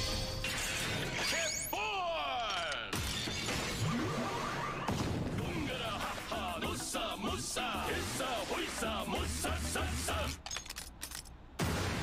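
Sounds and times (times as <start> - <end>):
background music: 0.0 - 1.0, 5.4 - 10.3.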